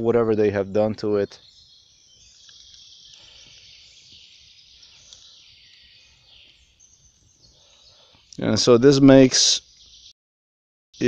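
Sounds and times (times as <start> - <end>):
distant high-pitched birdsong: 0.0 - 10.2.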